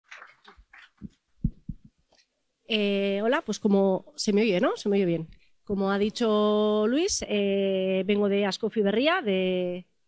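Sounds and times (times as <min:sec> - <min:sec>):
microphone handling rustling: 0:00.7 - 0:02.2
microphone thumps: 0:01.0 - 0:02.0.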